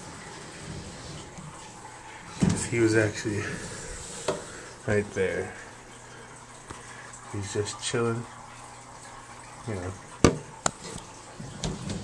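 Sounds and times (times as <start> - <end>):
steady room noise hiss: 0.0 - 12.0.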